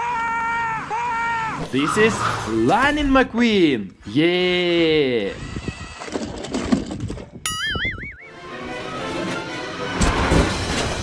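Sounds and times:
warbling whistle: 0:07.5 - 0:08.4
music: 0:08.2 - 0:11.0.

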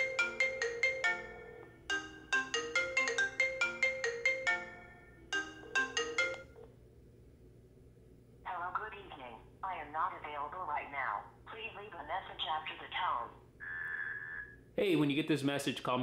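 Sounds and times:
marimba-like phone ringtone: 0:00.0 - 0:06.6.

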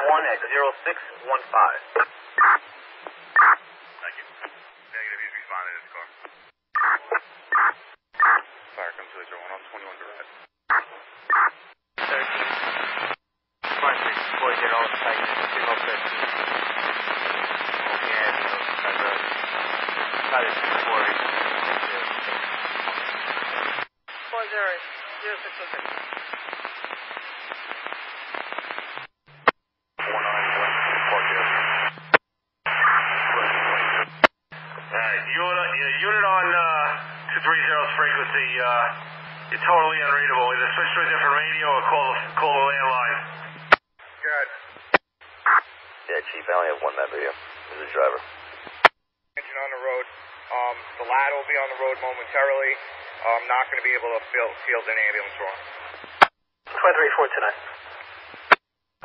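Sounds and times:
radio voice: 0:00.0 - 0:02.6, 0:03.4 - 0:23.6, 0:24.2 - 0:26.6, 0:30.0 - 0:44.8, 0:45.5 - 0:48.3, 0:49.4 - 0:55.6, 0:56.7 - 0:57.9
hissy garbled radio channel: 0:00.0 - 0:58.6
steady low hum: 0:28.8 - 0:46.0.

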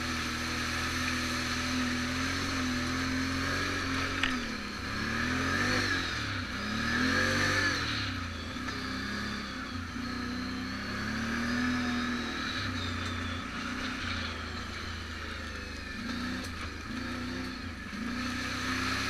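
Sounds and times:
off-road vehicle engine revving: 0:00.0 - 0:19.0.

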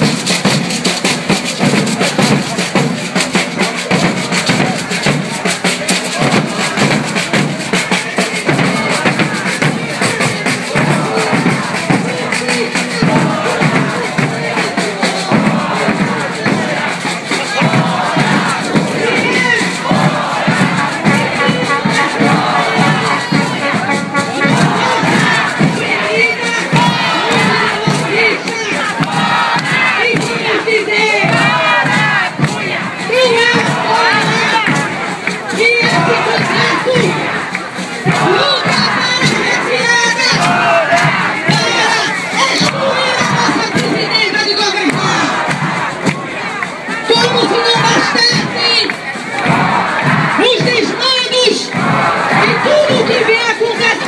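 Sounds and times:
crowd shouting and cheering: 0:00.0 - 0:54.0
frame drums beating fast: 0:00.0 - 0:54.0.

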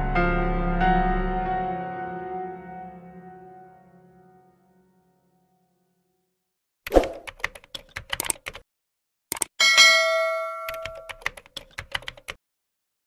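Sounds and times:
sharp clicks: 0:06.9 - 0:08.6, 0:09.3 - 0:09.5
bell-like notification ding: 0:09.6 - 0:11.2.

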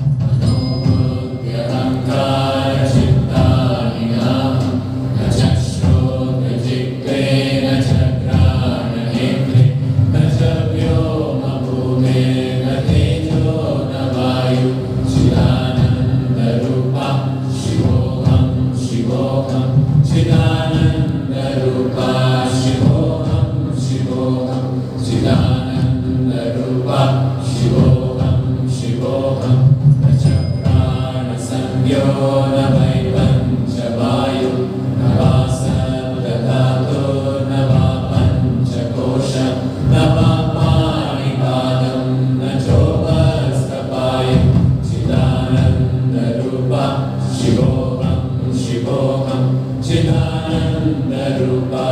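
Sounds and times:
low drone: 0:00.0 - 0:51.9
voices chanting: 0:00.4 - 0:51.9.

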